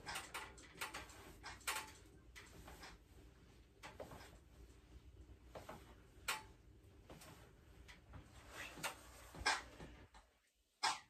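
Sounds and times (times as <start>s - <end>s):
metal tower clicks and knocks: 0.0s - 3.0s.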